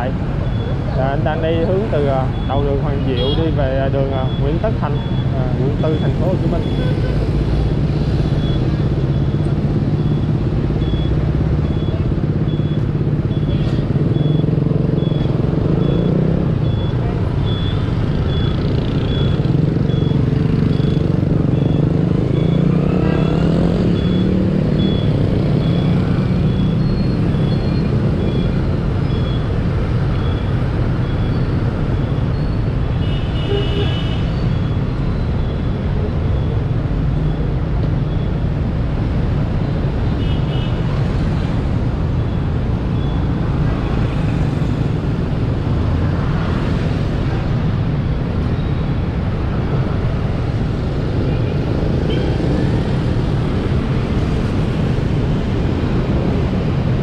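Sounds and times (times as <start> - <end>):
street traffic: 0.0 - 57.0.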